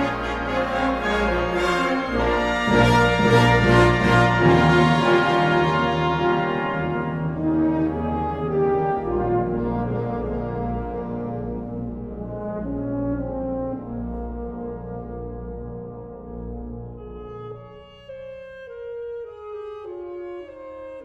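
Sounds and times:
wind orchestra held chords: 0.0s - 21.0s.

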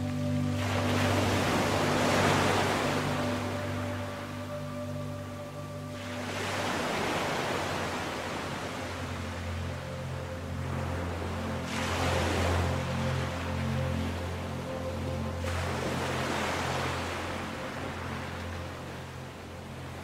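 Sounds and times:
slow ambient music: 0.0s - 20.0s.

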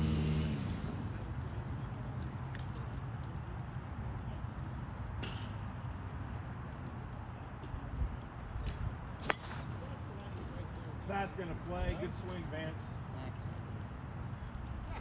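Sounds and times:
golf ball struck with sharp crack: 8.7s - 9.8s.

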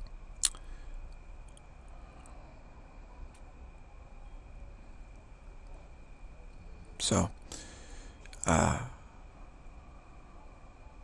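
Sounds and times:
faint steady high tone: 0.0s - 11.0s
low steady hum: 0.0s - 11.0s.

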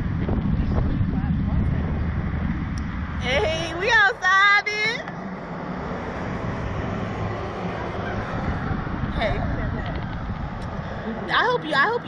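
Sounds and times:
wind rushing on microphone: 0.0s - 12.0s.

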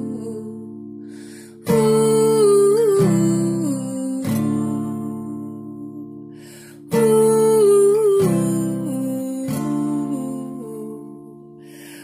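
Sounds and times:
acoustic guitar chords strummed: 0.0s - 12.0s.

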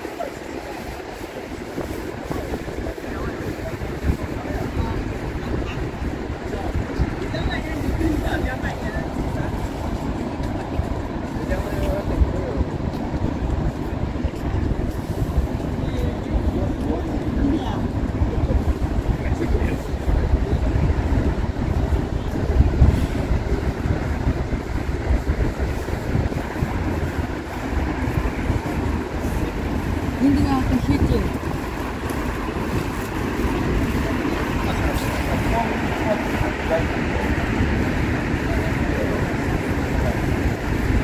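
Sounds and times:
passers-by talking faintly: 0.0s - 41.0s
steady low city rumble: 0.0s - 41.0s.

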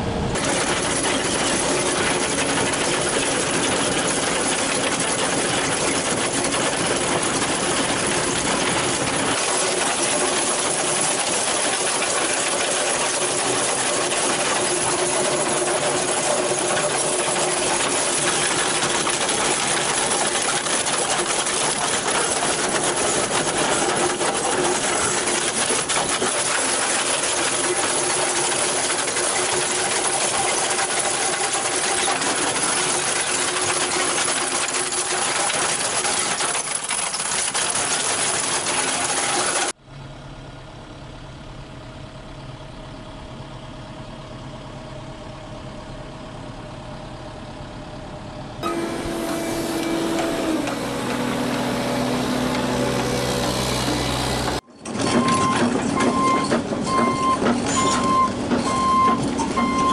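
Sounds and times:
drum cutter grinding rock: 0.3s - 36.4s, 48.6s - 54.6s
low machine hum: 39.8s - 54.6s.

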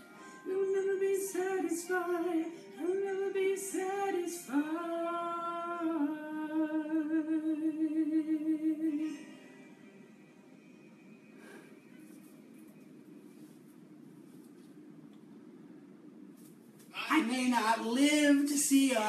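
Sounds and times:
person singing with vibrato: 0.0s - 9.7s, 16.9s - 19.0s.

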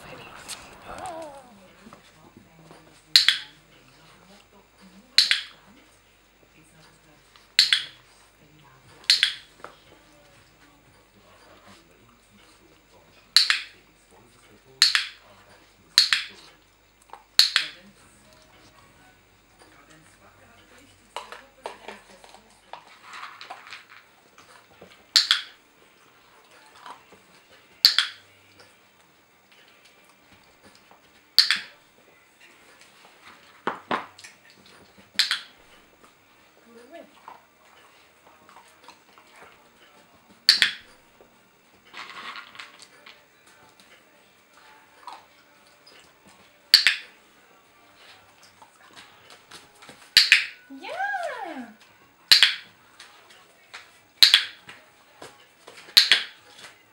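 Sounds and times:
dog-training clicker clicking: 7.6s - 8.0s, 31.4s - 31.7s, 35.2s - 35.5s, 40.5s - 40.8s, 46.8s - 47.0s, 50.2s - 50.6s.

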